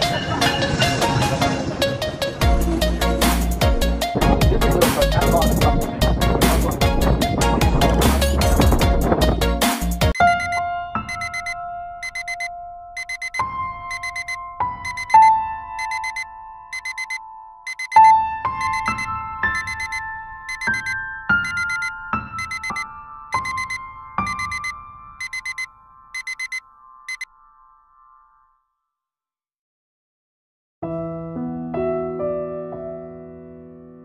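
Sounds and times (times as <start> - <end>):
electronic alarm beeping: 10.1 - 27.3.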